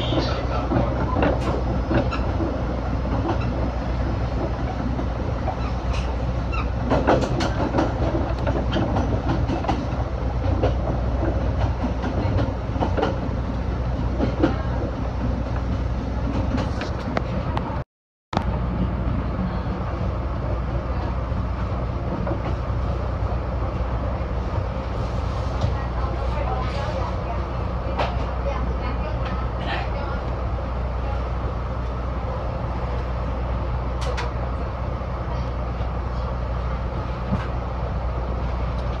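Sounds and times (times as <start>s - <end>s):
wheels clicking over rail joints: 0.0s - 13.3s
wheel and rail noise: 0.0s - 17.8s, 18.4s - 39.0s.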